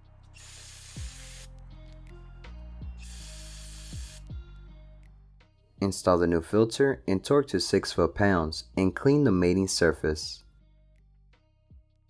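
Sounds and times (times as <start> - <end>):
aerosol spray hissing: 0.4 - 1.5, 3.0 - 4.3.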